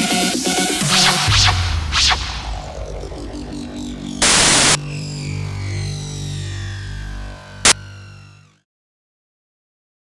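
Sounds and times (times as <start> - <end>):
electronic music with bass note: 0.0 - 8.6
burst of static white noise: 4.1 - 4.8.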